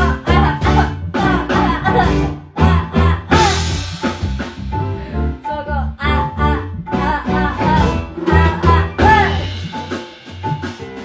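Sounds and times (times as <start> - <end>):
woman singing into microphone: 0.0 - 3.8, 5.0 - 9.6
band playing guitar and drums: 0.0 - 11.0.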